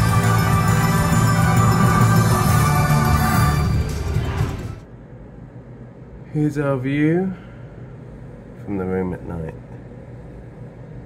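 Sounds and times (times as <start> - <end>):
slot machine bonus music: 0.0 - 4.8
low steady hum: 0.0 - 11.0.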